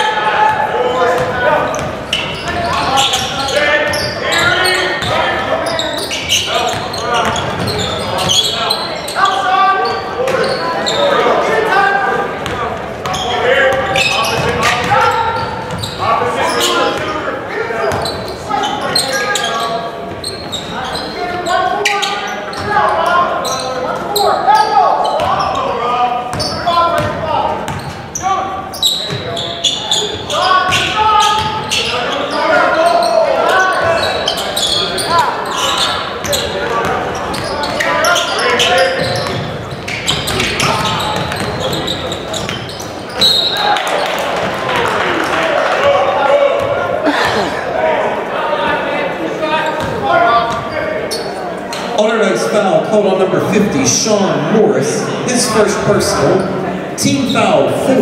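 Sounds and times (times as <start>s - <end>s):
voices calling out echoing: 0.0s - 58.0s.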